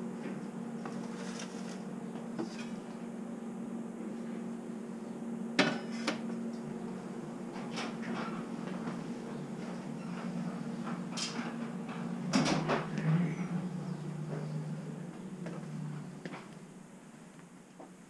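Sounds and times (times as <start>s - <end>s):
low hum: 0.0s - 17.7s.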